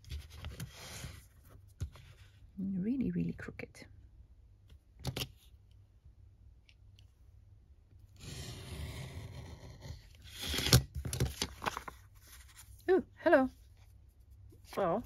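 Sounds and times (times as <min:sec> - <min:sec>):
craft knife slicing paper along ruler: 0:08.2 - 0:10.8
paper crackling: 0:10.3 - 0:12.7.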